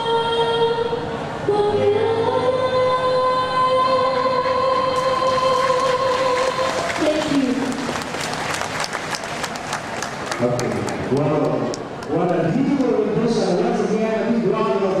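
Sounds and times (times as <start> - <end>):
woman singing through microphone: 0.0 - 7.9
audience applause: 5.2 - 12.4
man speaking: 10.4 - 15.0.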